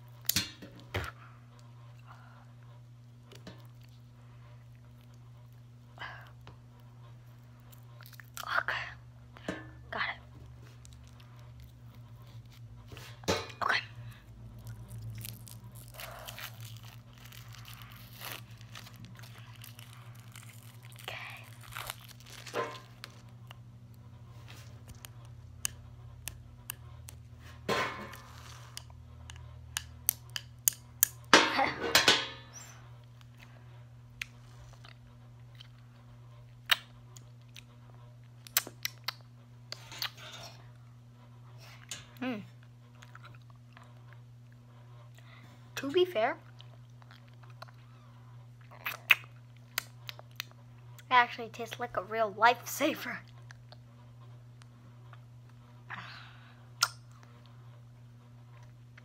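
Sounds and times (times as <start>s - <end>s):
hard candy being crunched: 14.7s - 23.3s.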